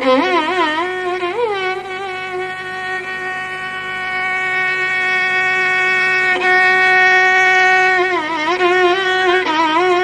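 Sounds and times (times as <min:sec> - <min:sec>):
faint low drone: 0:00.0 - 0:10.0
violin holding long note: 0:00.0 - 0:10.0.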